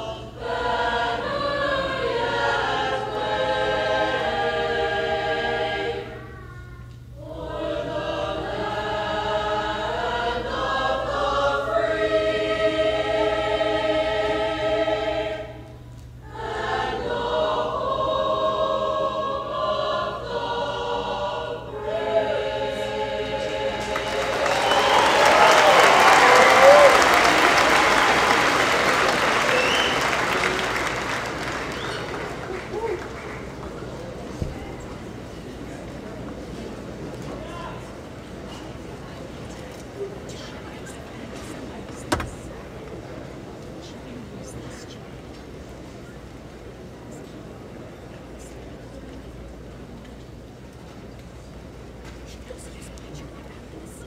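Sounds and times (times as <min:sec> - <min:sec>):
large choir singing: 0:00.0 - 0:06.2, 0:07.2 - 0:44.4
audience applause: 0:23.8 - 0:34.4.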